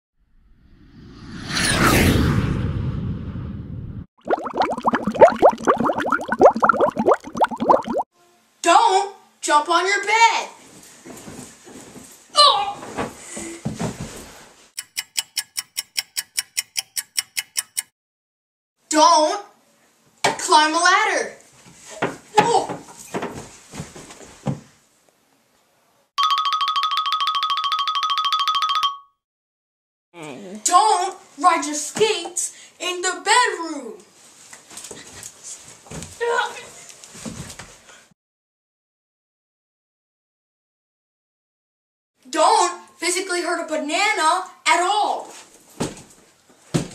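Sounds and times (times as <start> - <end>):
rapid clock ticking: 14.8 - 17.9.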